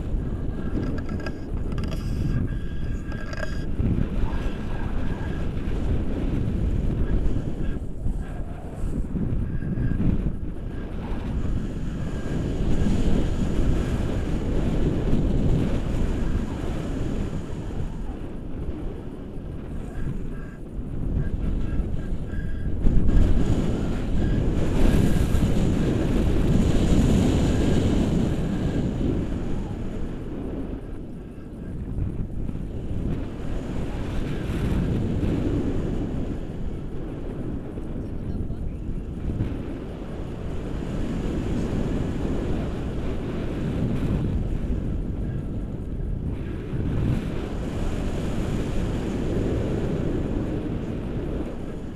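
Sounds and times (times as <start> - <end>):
wind buffeting microphone: 0.0 - 51.9.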